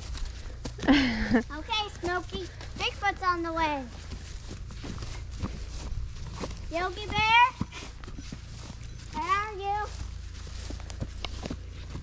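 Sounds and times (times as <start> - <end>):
footsteps through ferns: 0.0 - 12.0.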